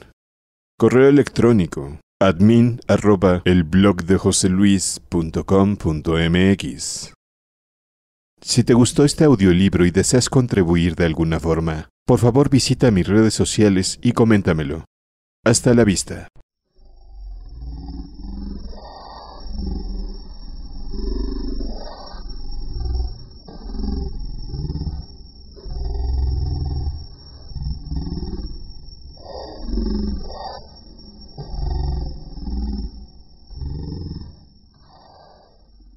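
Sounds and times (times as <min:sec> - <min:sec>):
deep roaring creature: 0:16.7 - 0:35.9.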